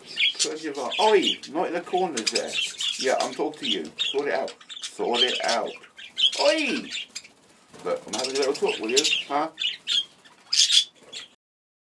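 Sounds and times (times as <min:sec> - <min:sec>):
budgerigar squawking: 0:00.0 - 0:07.4, 0:08.0 - 0:11.4.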